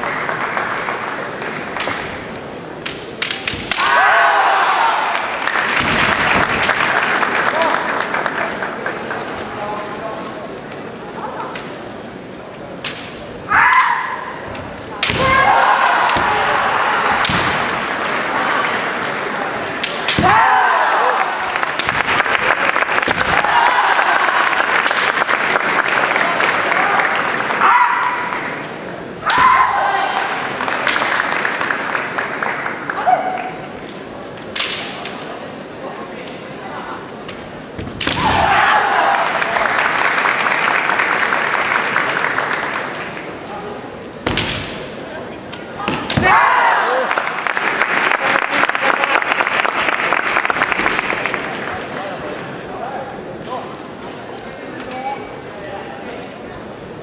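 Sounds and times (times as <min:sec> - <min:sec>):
audience applauding: 0:00.0 - 0:01.8, 0:04.9 - 0:09.3, 0:20.8 - 0:27.6, 0:30.4 - 0:33.6, 0:38.8 - 0:43.3, 0:46.9 - 0:51.8
bamboo swords clacking: 0:01.7 - 0:04.2, 0:12.8 - 0:16.5, 0:17.1 - 0:17.9, 0:19.7 - 0:20.6, 0:33.9 - 0:35.4, 0:37.1 - 0:38.6, 0:44.2 - 0:46.3
fencers shouting: 0:03.3 - 0:05.4, 0:13.4 - 0:18.9, 0:19.6 - 0:21.9, 0:27.6 - 0:28.4, 0:29.2 - 0:30.4, 0:38.0 - 0:39.4, 0:45.8 - 0:47.1.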